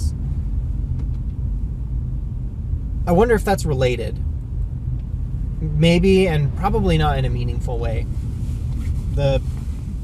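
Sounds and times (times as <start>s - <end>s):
car interior road and engine noise: 0.0s - 10.0s.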